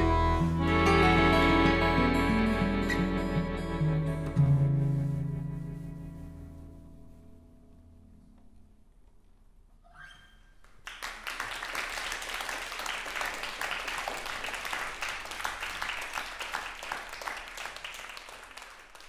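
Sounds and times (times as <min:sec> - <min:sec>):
audience applauding: 0:10.8 - 0:19.0.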